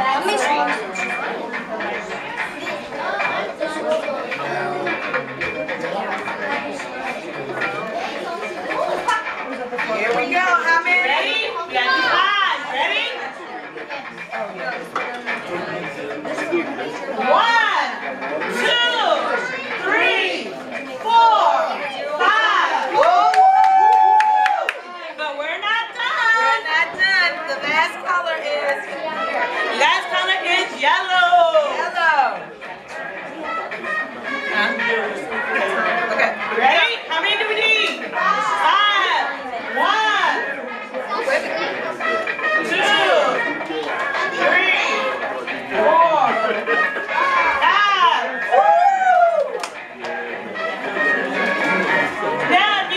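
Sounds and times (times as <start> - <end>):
group talking: 0.0 - 52.9
music playing: 0.0 - 52.9
long held shout: 48.5 - 49.6
sharp claps: 49.4 - 50.2.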